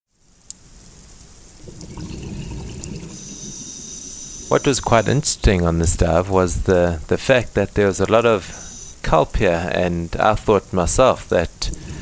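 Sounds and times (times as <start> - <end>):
faint ticks: 0.3 - 1.3
underwater water and bubbling: 1.5 - 5.7.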